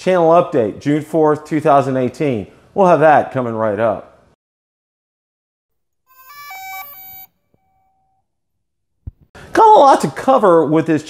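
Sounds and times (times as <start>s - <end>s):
electronic logo jingle: 6.1s - 7.9s.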